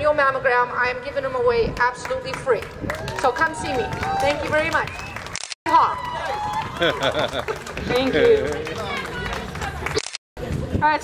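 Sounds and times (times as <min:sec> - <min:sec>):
people talking over a pa: 0:07.8 - 0:10.0.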